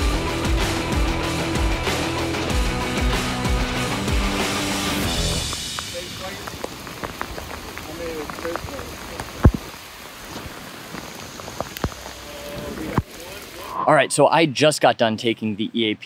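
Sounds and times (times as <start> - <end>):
rain pattering on a tarp: 4.8 - 13.7
drips and taps: 5.5 - 12.2.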